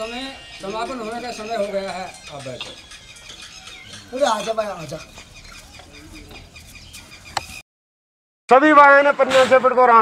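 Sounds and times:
chickens clucking: 0.0s - 7.6s.

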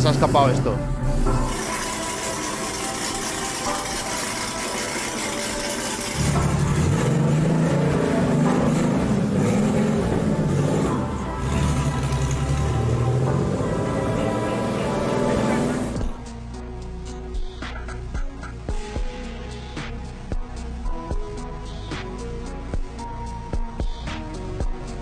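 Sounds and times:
car engine running: 0.0s - 16.3s
background music: 0.0s - 25.0s.

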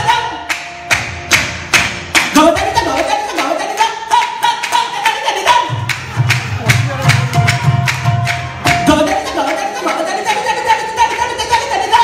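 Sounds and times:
hand percussion beats: 0.0s - 12.0s
person singing: 2.3s - 12.0s.

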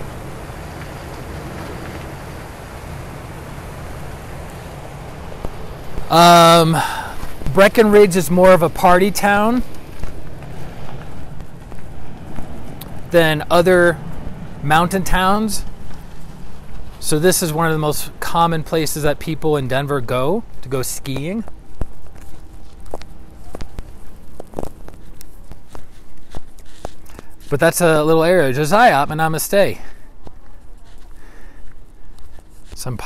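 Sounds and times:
low street rumble: 0.0s - 33.0s
footsteps: 3.9s - 33.0s.

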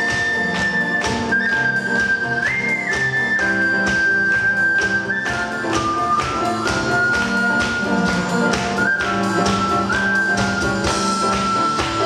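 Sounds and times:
ocarina melody: 0.0s - 12.0s
piano: 0.0s - 12.0s.

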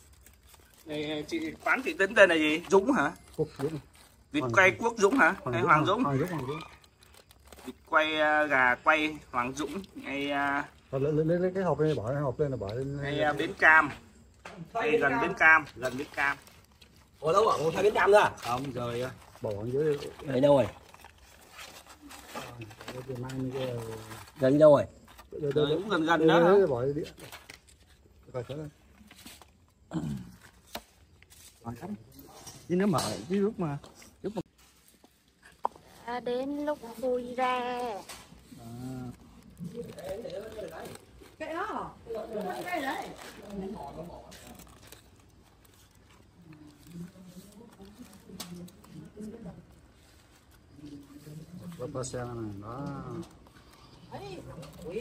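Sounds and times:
foil crinkling: 0.0s - 32.6s, 33.4s - 55.0s.

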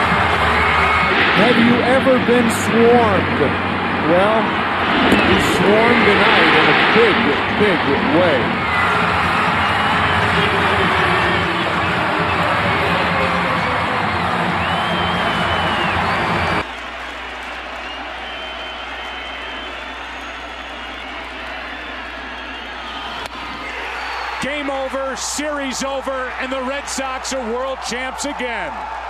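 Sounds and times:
crowd murmur: 0.0s - 16.6s
stadium crowd cheering: 0.0s - 29.0s.

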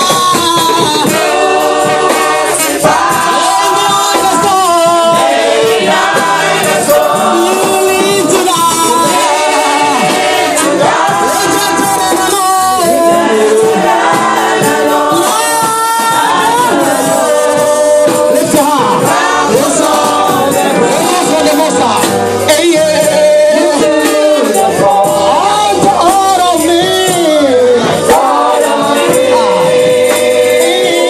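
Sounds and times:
congregation singing gospel song: 0.0s - 31.0s.

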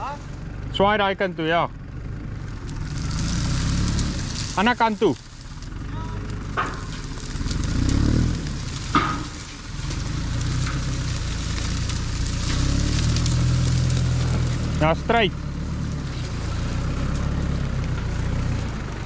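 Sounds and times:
tractor engine running: 0.0s - 19.0s
sharp knocks: 6.5s - 7.2s, 8.9s - 9.5s.

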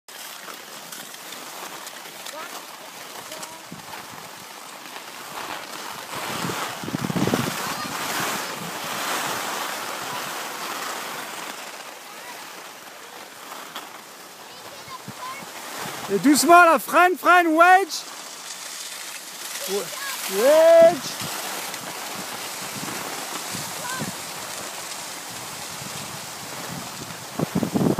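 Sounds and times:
skis sliding over snow: 0.1s - 27.9s
wind on microphone: 6.0s - 10.4s, 20.8s - 27.9s.

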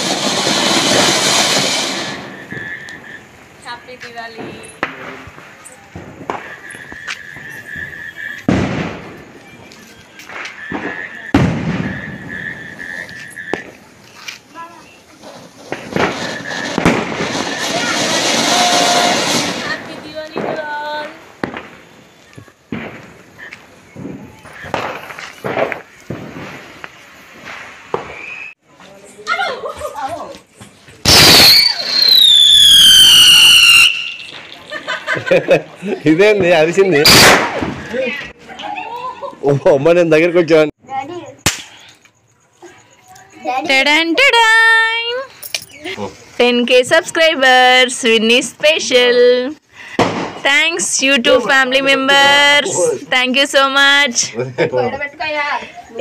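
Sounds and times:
firecrackers banging: 0.0s - 28.5s, 29.7s - 38.6s, 43.7s - 54.4s
thin high whistle: 28.1s - 28.6s, 31.1s - 34.5s.

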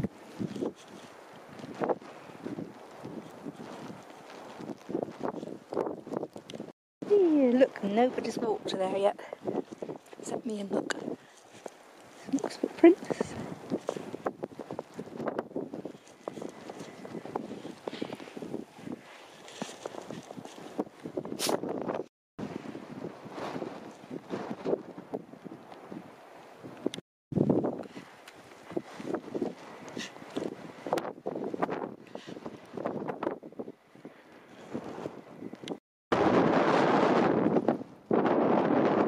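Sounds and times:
footsteps crunching through snow: 0.0s - 6.3s, 9.4s - 22.0s, 27.4s - 33.0s
wind buffeting microphone: 0.0s - 39.0s.

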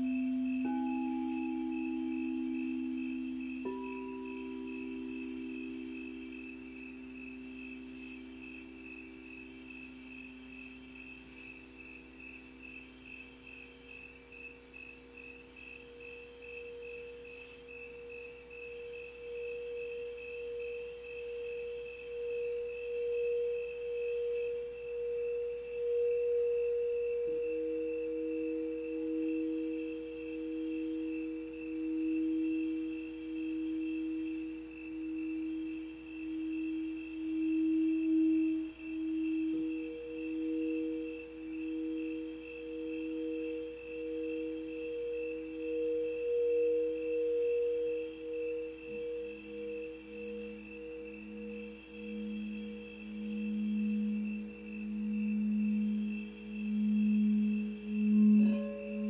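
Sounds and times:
singing bowls ringing: 0.0s - 59.0s.

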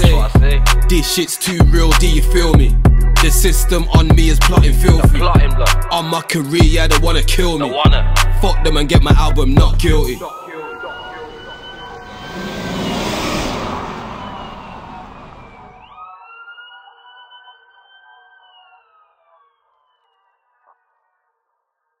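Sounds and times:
siren wailing: 10.1s - 20.6s
loud rushing noise: 11.2s - 15.8s.

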